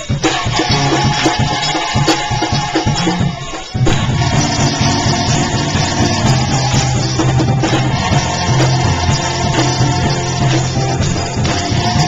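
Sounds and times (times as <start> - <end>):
band playing: 0.0 - 12.0
choir singing: 0.0 - 12.0.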